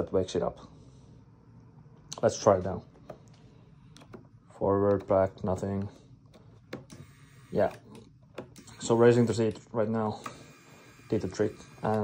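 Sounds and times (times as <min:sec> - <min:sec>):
seat motor whirring: 0:06.8 - 0:09.4, 0:10.2 - 0:12.0.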